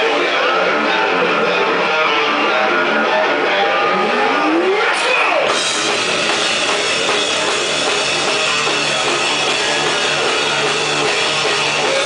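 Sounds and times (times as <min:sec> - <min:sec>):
heavy metal band playing: 0:00.0 - 0:12.0.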